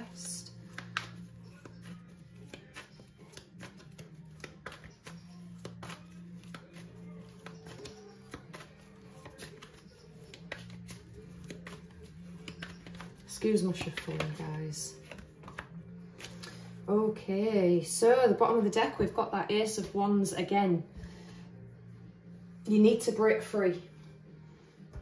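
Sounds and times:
quiet background music: 0.0s - 25.0s
cards being shuffled: 0.1s - 16.6s.

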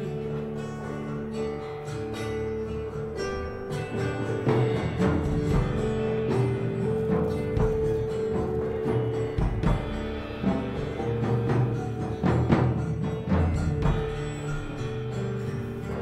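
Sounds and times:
drum kit: 0.0s - 16.0s
electric guitar: 0.0s - 16.0s
strummed acoustic guitar: 0.0s - 16.0s.

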